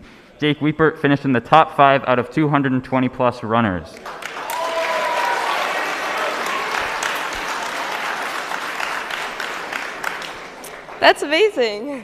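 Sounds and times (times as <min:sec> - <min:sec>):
audience applauding: 0:04.0 - 0:11.9.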